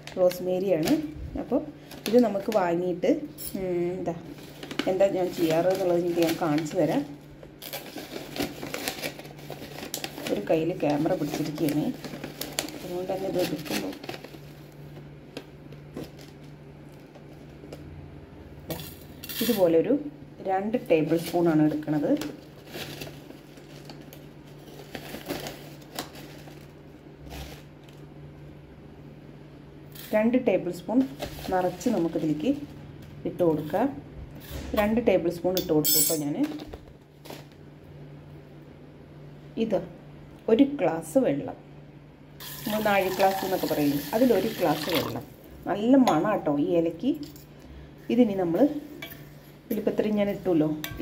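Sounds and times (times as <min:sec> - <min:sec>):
metal spoon clinking on steel bowl: 0:35.6 - 0:36.3.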